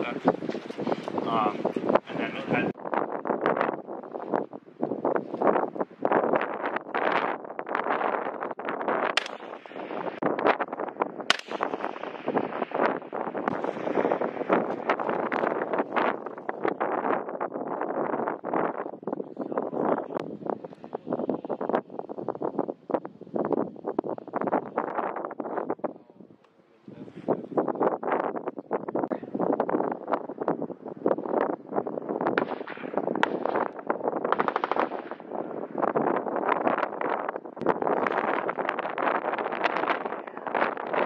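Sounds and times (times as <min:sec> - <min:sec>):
wind buffeting microphone: 0:00.0 - 0:41.0
sharp cracks: 0:06.9 - 0:17.2, 0:32.2 - 0:41.0.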